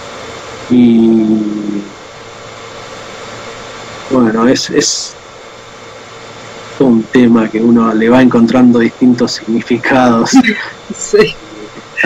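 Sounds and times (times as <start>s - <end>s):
background hiss: 0.0s - 12.0s
faint low hum: 0.0s - 12.0s.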